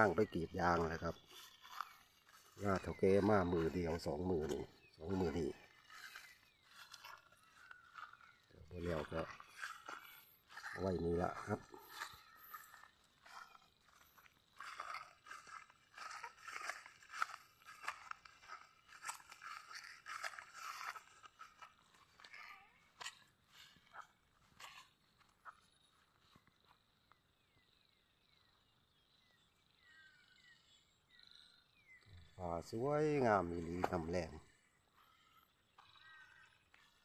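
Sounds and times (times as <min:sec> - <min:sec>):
footsteps through grass: 0:00.0 - 0:26.6, 0:32.9 - 0:37.0.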